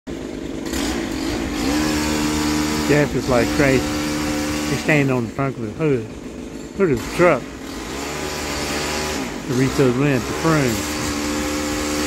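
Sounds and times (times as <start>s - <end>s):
pole saw motor revving: 0.1s - 12.0s.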